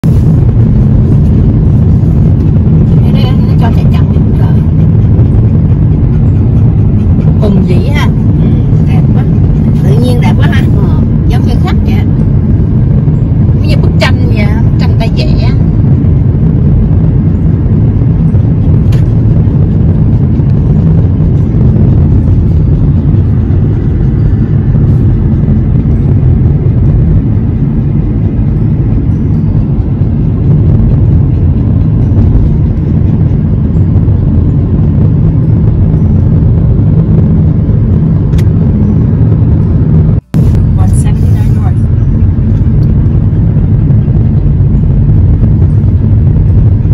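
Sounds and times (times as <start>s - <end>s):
car cabin road and engine rumble: 0.0s - 46.9s.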